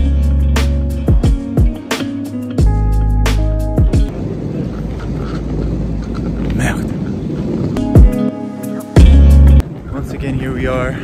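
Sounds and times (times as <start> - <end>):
train rumbling inside carriage: 4.1 - 7.8.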